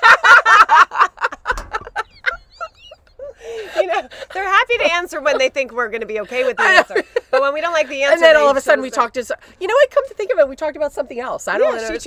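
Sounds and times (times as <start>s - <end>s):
women laughing: 0.0s - 8.2s.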